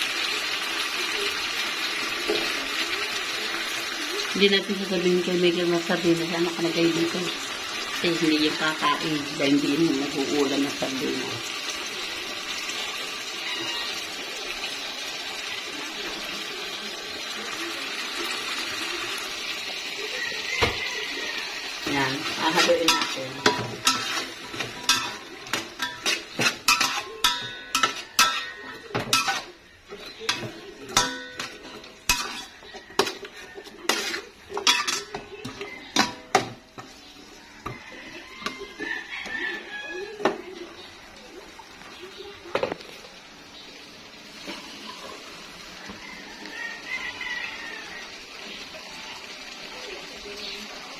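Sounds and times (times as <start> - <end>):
pot of broth hissing on stove: 0.0 - 4.4, 6.8 - 24.4
metal spatula scraping a pot: 21.2 - 39.7.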